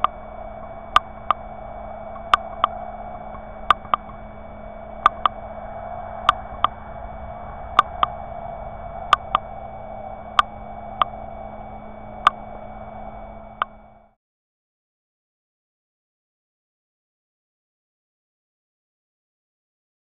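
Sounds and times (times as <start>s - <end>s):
sharp ticks: 0.0s - 5.4s, 6.2s - 6.8s, 7.5s - 8.2s, 9.0s - 14.0s
faint whining tones: 0.0s - 14.2s
steady hum: 0.0s - 14.2s.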